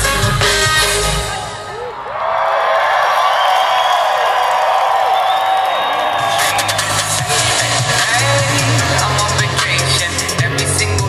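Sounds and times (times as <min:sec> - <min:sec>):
band playing bass-heavy beat: 0:00.0 - 0:01.6, 0:06.2 - 0:11.0
crowd cheering and whooping: 0:01.4 - 0:09.9.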